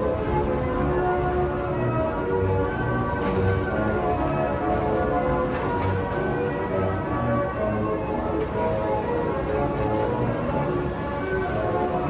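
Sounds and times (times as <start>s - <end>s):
carousel music with chiming notes: 0.0s - 12.0s.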